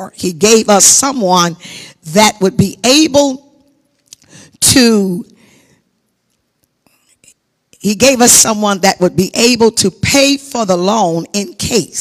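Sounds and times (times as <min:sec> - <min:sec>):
woman speaking: 0:00.0 - 0:03.6, 0:04.6 - 0:05.3, 0:07.8 - 0:12.0.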